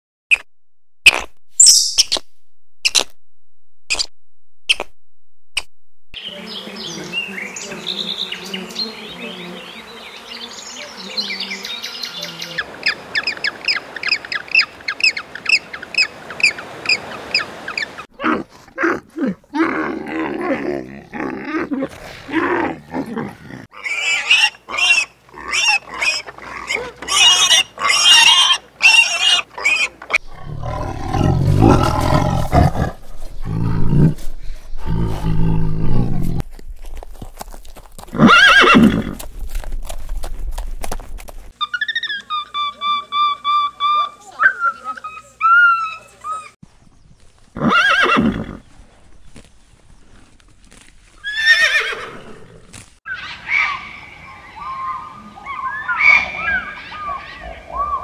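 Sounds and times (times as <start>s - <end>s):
high chirping: 1.1s - 3.1s
evenly spaced chirps: 1.6s - 2.2s
tiger growling roars: 30.2s - 36.4s
loud animal calls: 53.1s - 58.0s.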